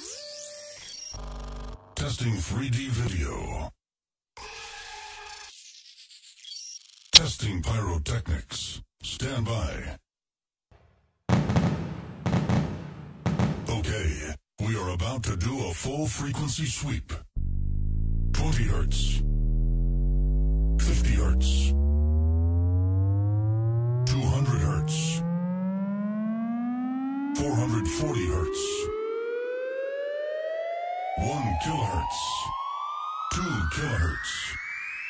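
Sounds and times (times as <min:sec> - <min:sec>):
explosion blast: 0:11.3 - 0:13.9
heavy booming hits: 0:11.3 - 0:14.1
rising test tone sweep: 0:17.4 - 0:27.4.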